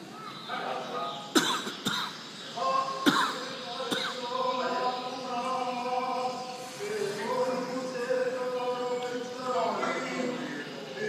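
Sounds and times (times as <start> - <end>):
short coughs: 1.4 - 2.2, 3.1 - 4.2.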